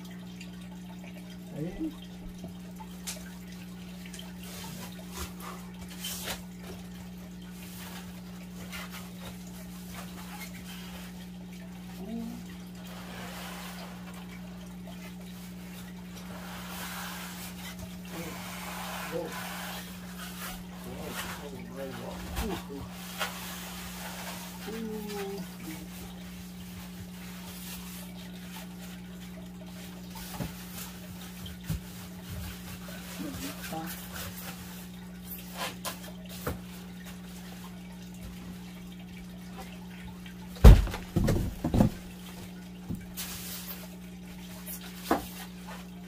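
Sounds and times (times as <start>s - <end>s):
styrofoam and cardboard rubbing: 12.2s - 14.6s, 15.4s - 28.9s, 30.0s - 37.3s.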